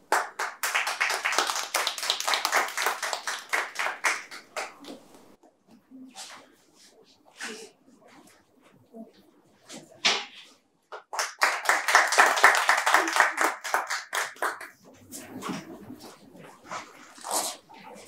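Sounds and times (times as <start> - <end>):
group applauding: 0.0 - 5.4, 11.0 - 14.8.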